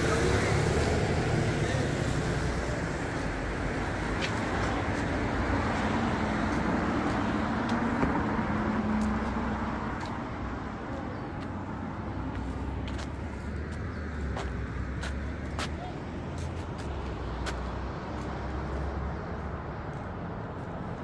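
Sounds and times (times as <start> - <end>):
truck engines and traffic rumble: 0.0 - 21.0.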